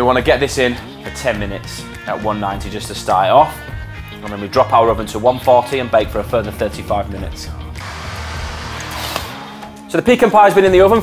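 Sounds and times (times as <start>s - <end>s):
background music: 0.0s - 11.0s
whoosh transition effect: 7.8s - 9.7s.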